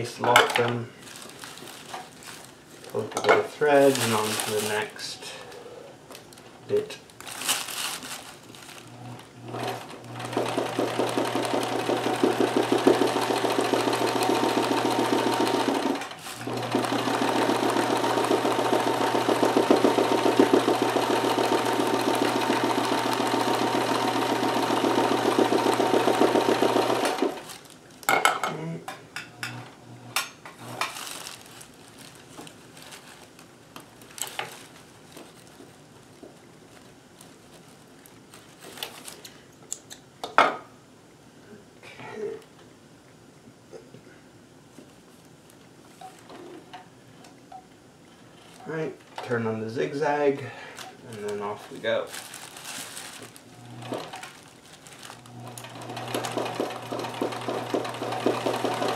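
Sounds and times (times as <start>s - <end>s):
sewing machine running: 8.9s - 27.5s, 53.5s - 54.3s, 55.1s - 58.9s.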